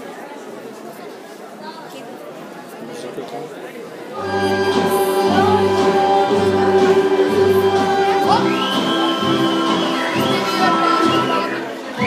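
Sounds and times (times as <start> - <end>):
folk dance music: 4.2 - 12.0.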